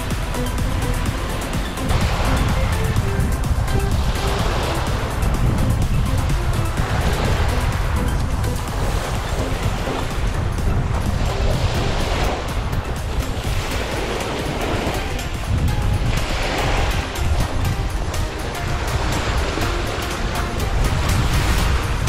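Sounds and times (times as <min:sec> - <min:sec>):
soft background music: 0:00.0 - 0:22.0
wind rumbling on microphone: 0:00.0 - 0:22.0.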